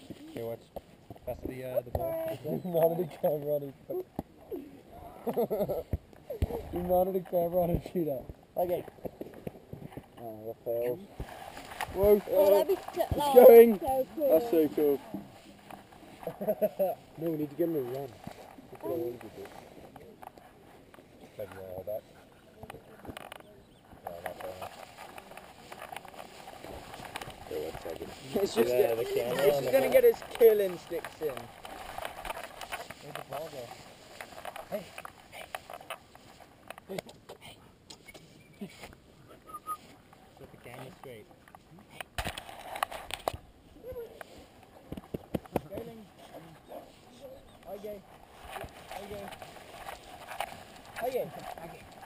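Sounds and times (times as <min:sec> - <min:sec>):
camera shaking in mount: 0:23.0 - 0:36.9, 0:47.5 - 0:52.0
camera handling knocks and rubbing: 0:44.9 - 0:45.9.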